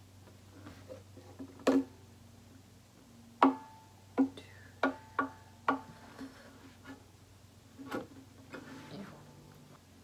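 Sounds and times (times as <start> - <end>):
acoustic guitar strings plucked: 3.4 - 6.0.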